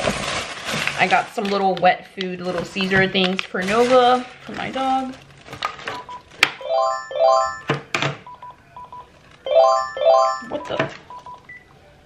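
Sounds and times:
electronic chime beeping: 6.6 - 7.8, 9.5 - 10.8.

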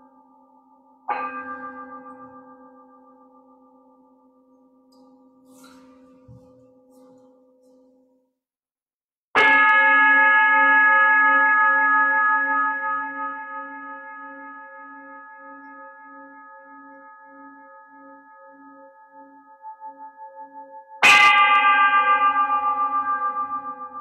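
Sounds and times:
metal singing bowl ringing: 0.0 - 8.2.

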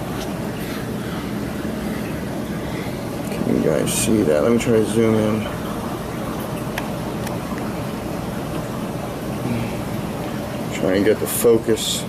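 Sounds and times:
aquarium pumps and water running: 0.0 - 12.0.

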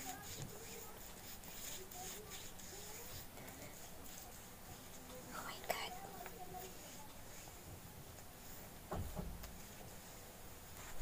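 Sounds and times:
woman whispering: 5.3 - 6.2.

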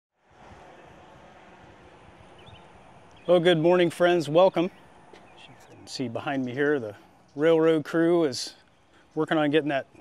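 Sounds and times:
wind on microphone rumble: 0.2 - 3.1
steady low hiss: 0.2 - 10.0.

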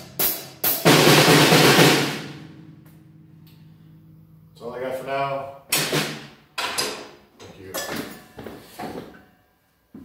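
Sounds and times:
man speaking: 4.6 - 5.6.

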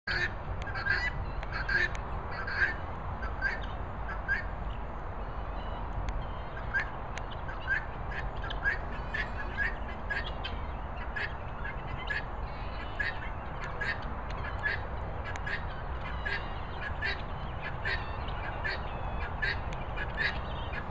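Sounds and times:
guineafowl calling harshly: 0.1 - 4.6, 5.6 - 20.9.

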